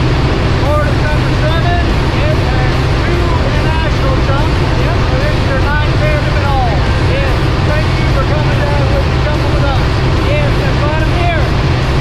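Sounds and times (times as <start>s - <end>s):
plane engine and propeller drone: 0.0s - 12.0s
people talking: 0.6s - 12.0s.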